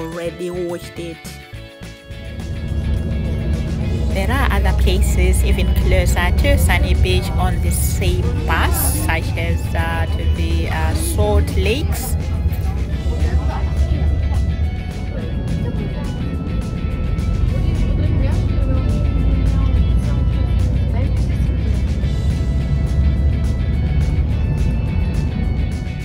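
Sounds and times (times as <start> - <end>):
background music: 0.0 - 26.0
bus driving rumble: 1.5 - 26.0.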